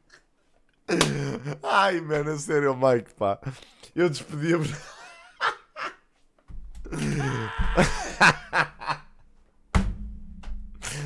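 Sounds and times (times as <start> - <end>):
man laughing breathily: 6.9 - 9.2.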